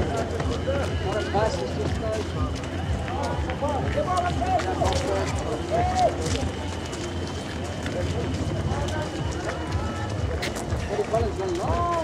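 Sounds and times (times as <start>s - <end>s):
runners' footsteps on road: 0.0s - 12.0s.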